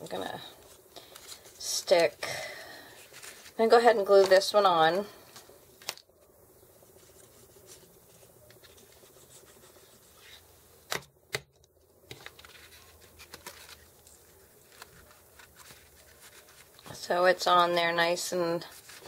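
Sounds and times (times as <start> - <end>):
paper rustling and tapping: 10.9 - 17.0.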